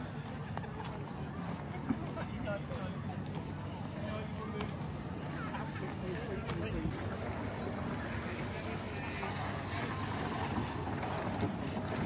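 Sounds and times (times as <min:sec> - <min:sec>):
motor boat humming: 0:04.8 - 0:12.0.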